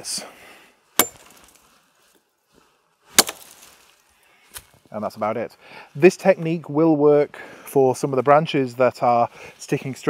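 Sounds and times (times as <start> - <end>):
axe chopping into branch: 1.0 - 1.5, 3.1 - 3.7.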